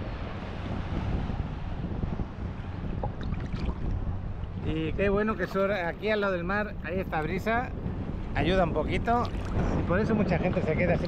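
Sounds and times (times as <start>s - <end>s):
sea water sloshing and lapping: 0.0s - 11.0s
wind buffeting microphone: 0.0s - 11.0s.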